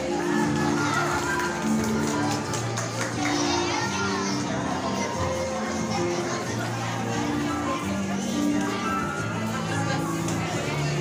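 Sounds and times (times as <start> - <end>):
crowd chatter: 0.0 - 11.0
music with held notes: 0.0 - 11.0.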